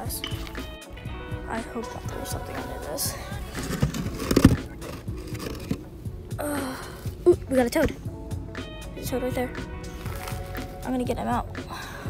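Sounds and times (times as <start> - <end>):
background music: 0.0 - 12.0
concrete lid knocking and scraping: 3.5 - 5.8.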